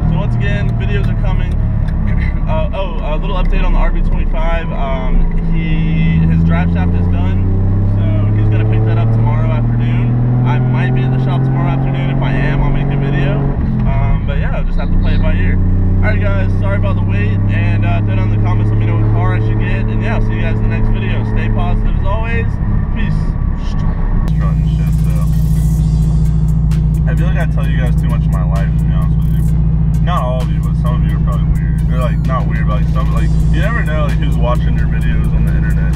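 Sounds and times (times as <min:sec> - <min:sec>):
man talking: 0:00.0 - 0:07.4, 0:08.0 - 0:25.8, 0:27.0 - 0:35.9
car engine droning: 0:00.0 - 0:35.9
music with steady beat: 0:24.3 - 0:35.9.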